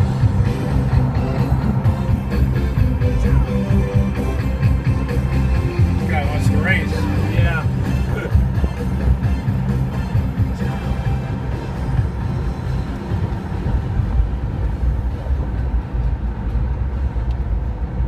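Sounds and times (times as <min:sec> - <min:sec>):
music playing: 0:00.0 - 0:17.0
car engine and road rumble: 0:00.0 - 0:18.0.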